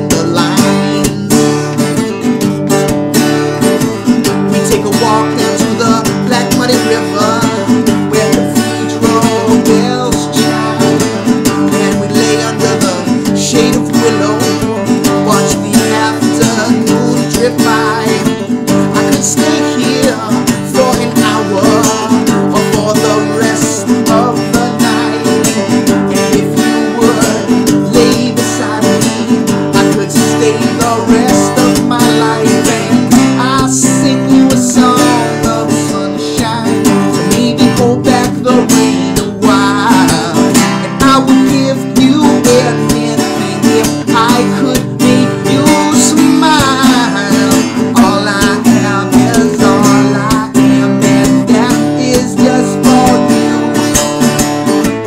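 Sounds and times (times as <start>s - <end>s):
acoustic guitar strumming: 0.0s - 55.0s
man singing: 0.0s - 55.0s.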